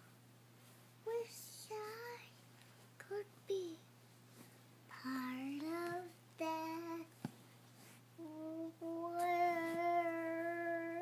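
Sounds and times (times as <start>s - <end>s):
toddler girl singing: 1.1s - 2.4s, 3.0s - 3.8s, 4.9s - 7.1s, 8.2s - 11.0s.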